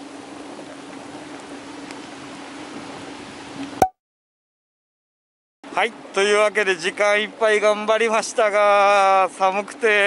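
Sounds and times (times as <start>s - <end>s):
rain falling on a lake: 0.0s - 3.8s, 6.0s - 10.0s.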